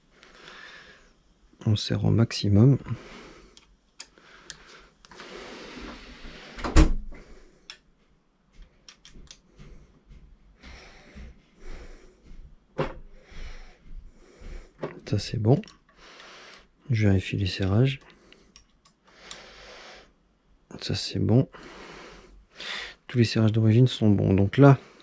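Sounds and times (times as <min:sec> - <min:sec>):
metal clicks and knocks: 0:08.8 - 0:09.4.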